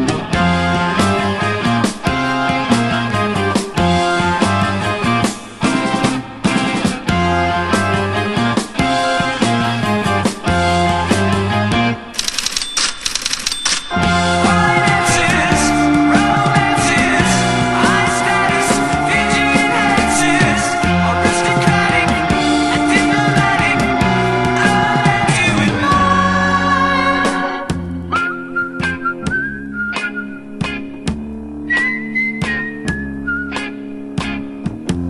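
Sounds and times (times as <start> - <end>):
sustained guitar and bass: 0.0 - 12.2, 13.9 - 35.0
rock music: 0.0 - 35.0
loud rattling bursts: 12.2 - 14.0
rapid mechanical clicking: 12.2 - 14.0
whistle-like melody line: 13.6 - 25.5, 27.9 - 31.0, 31.6 - 33.8.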